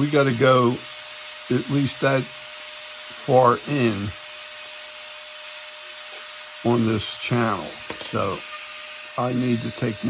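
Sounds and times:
small motor humming: 0:00.0 - 0:10.0.

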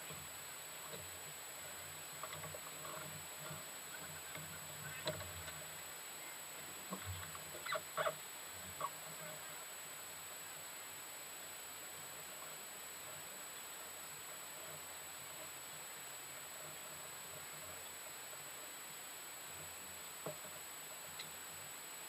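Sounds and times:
faint steady hiss: 0:00.0 - 0:22.0.

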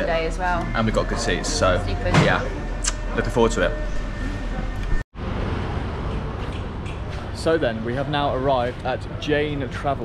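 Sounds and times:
street traffic noise: 0:01.2 - 0:10.0.

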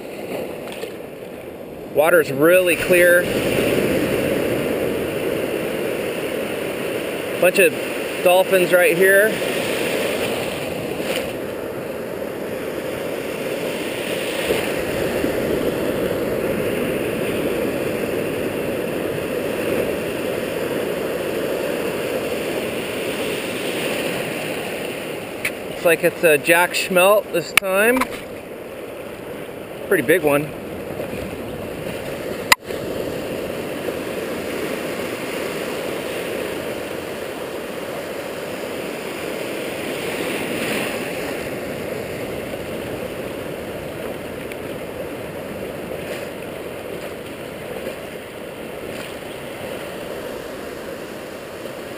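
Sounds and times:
ocean surf washing: 0:00.0 - 0:51.9.

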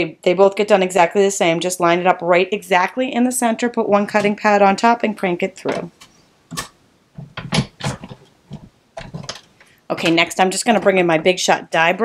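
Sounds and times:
hand-cranked machine creaks and clicks: 0:06.0 - 0:09.7.

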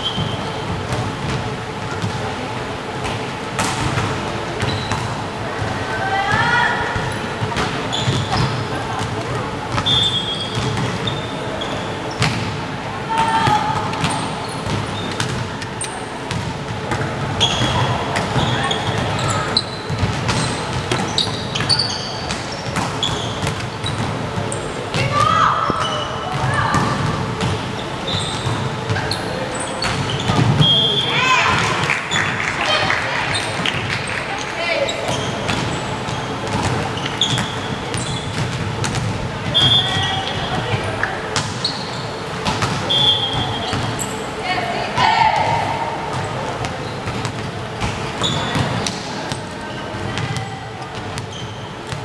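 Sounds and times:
sneakers squeaking on wooden court: 0:00.0 - 0:05.3, 0:06.2 - 0:44.4, 0:45.0 - 0:52.0
people shouting in a hall: 0:12.9 - 0:14.0, 0:25.0 - 0:27.0, 0:30.6 - 0:33.6, 0:44.4 - 0:46.1
volleyball hits: 0:16.2 - 0:29.1, 0:29.8 - 0:34.3, 0:35.0 - 0:41.7, 0:42.4 - 0:44.0.

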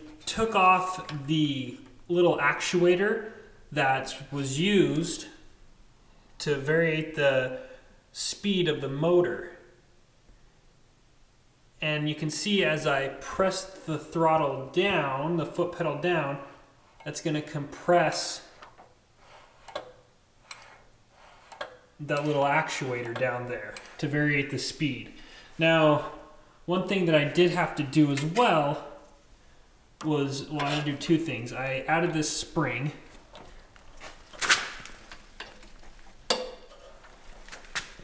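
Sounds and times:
metal clicks and scrapes: 0:18.1 - 0:22.4, 0:23.0 - 0:24.1, 0:33.0 - 0:38.0.

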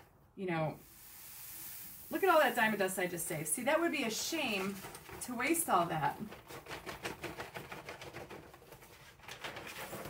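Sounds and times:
glitter trickling into plastic jar: 0:00.8 - 0:03.0.

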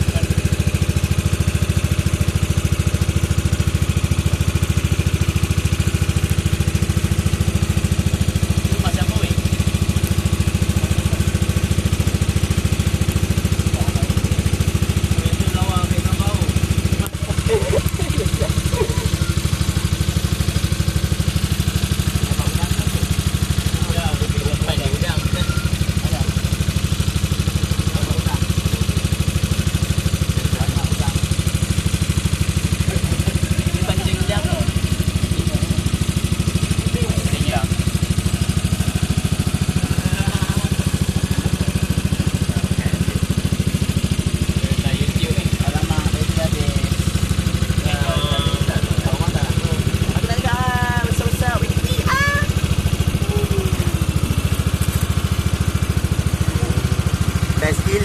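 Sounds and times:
outboard motor droning: 0:00.0 - 0:58.0
faint voices: 0:44.4 - 0:54.8.

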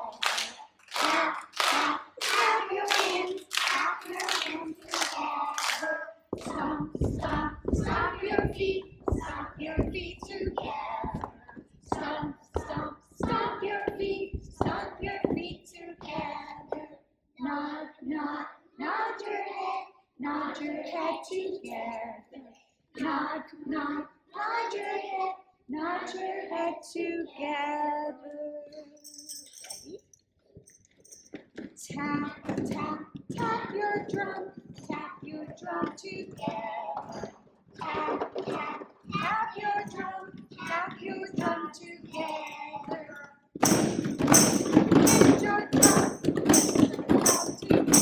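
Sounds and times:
children singing: 0:00.0 - 0:22.3, 0:23.0 - 0:28.6, 0:31.9 - 0:43.3
hand-struck beats: 0:01.0 - 0:16.8, 0:43.6 - 0:48.0
plastic buckets knocking: 0:06.3 - 0:16.8, 0:31.3 - 0:42.3, 0:43.6 - 0:48.0.

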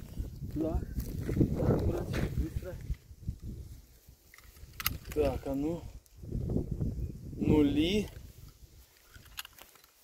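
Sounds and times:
sharp clicks: 0:04.3 - 0:05.4
rustling handling noise: 0:07.9 - 0:10.0.

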